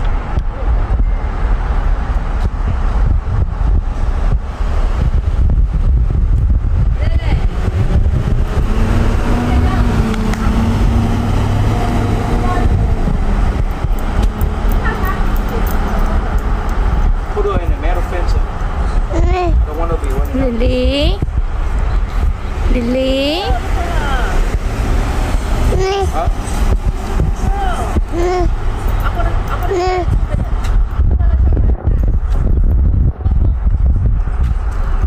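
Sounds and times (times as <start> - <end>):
engine hum: 0.0 - 35.0
motor vehicle rumble: 0.0 - 35.0.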